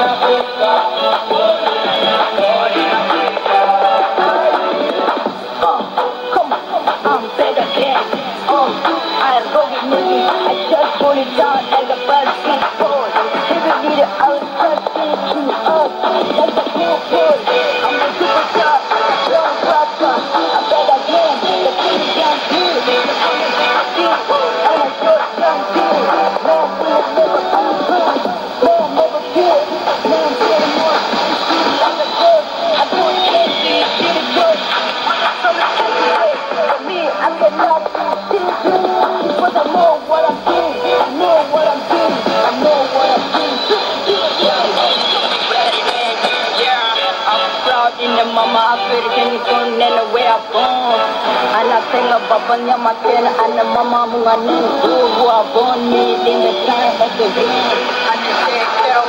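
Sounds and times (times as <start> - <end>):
music with singing on radio: 0.0 - 59.0.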